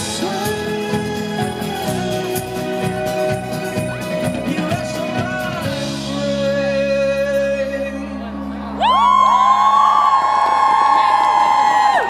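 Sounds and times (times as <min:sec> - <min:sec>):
music: 0:00.0 - 0:10.3
concert audience cheering and screaming: 0:07.8 - 0:12.0.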